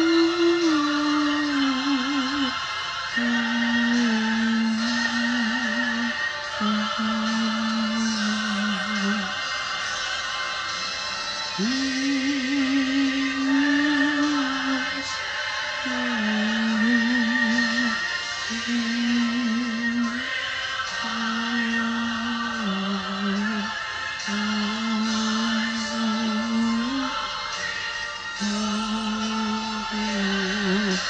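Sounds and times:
person singing with vibrato: 0.0 - 31.0.

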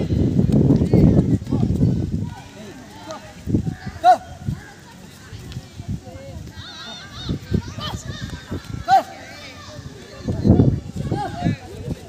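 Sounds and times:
boys calling out: 0.9 - 12.0.

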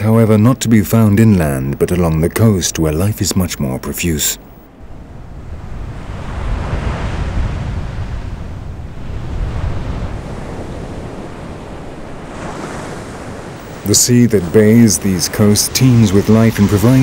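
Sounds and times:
ocean surf breaking: 0.0 - 17.0
wind: 0.0 - 17.0.

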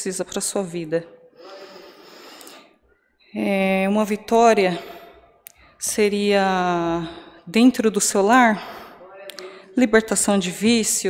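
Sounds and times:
woman breathing in: 1.4 - 2.9.

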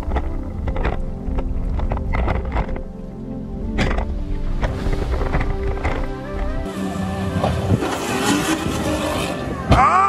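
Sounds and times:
car engine revving: 6.2 - 10.0.

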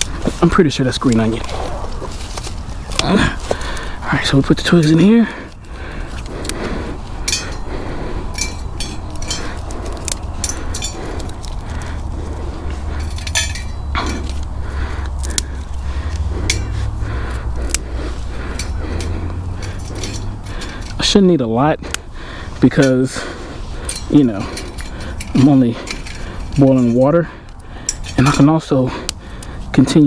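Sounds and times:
dry twigs snapping: 0.0 - 21.0, 21.8 - 30.0
light metallic clinks: 8.3 - 11.4, 13.0 - 14.5.

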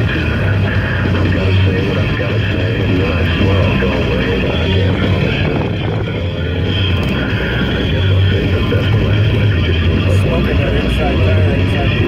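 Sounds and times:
engine running: 0.0 - 12.0.

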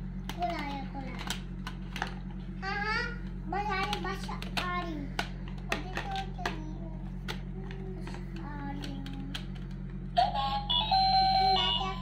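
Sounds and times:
toy telephone electronic melody: 10.2 - 12.0.

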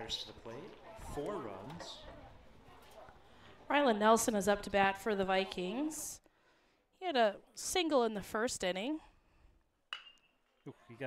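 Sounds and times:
metal bat hitting ball: 9.9 - 10.3.

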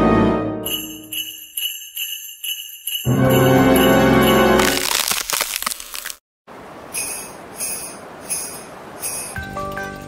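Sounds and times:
ice cracking sound effect: 4.5 - 6.2.

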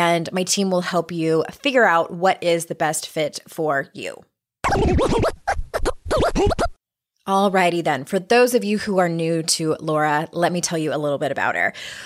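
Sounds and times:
record scratching: 4.6 - 6.8.

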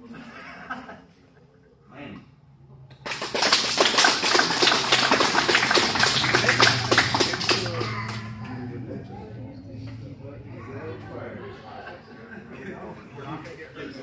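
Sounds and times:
group applauding: 2.9 - 9.0
voices calling out: 4.3 - 13.3.

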